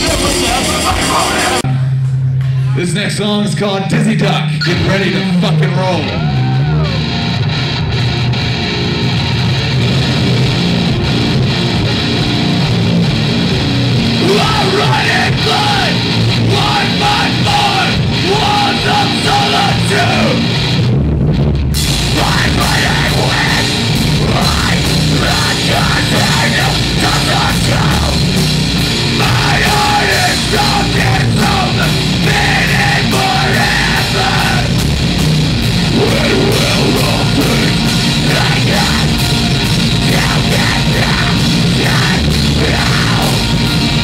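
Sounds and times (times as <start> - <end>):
rock band playing live: 0.0 - 44.0
person singing: 22.1 - 28.3, 29.1 - 34.8, 35.9 - 43.7.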